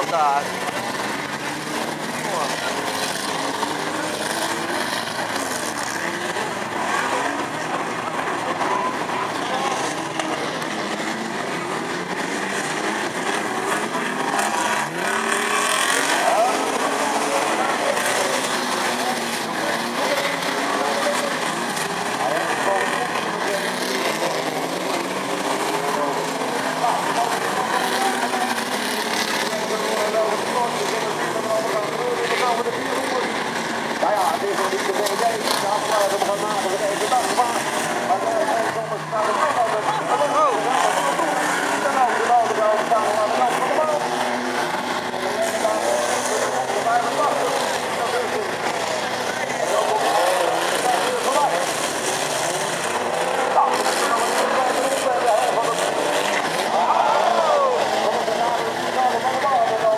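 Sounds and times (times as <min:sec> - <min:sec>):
racing car engines revving: 0:00.0 - 0:59.9
spectators chattering: 0:00.0 - 0:59.9.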